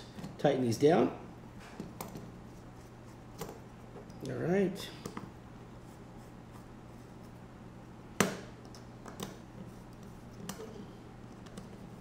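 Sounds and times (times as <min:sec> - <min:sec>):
small handling clicks and taps: 0:01.7 - 0:02.3, 0:08.2 - 0:09.4.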